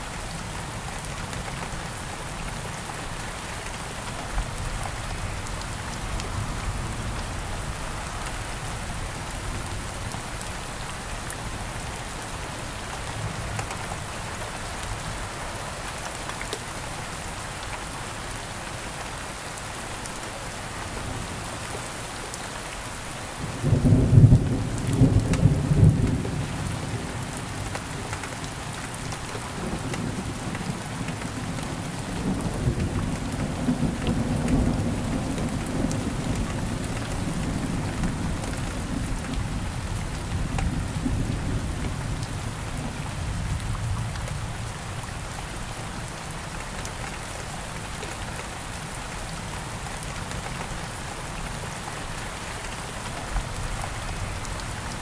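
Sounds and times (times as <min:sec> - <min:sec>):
steady rain falling: 0:00.0 - 0:55.0.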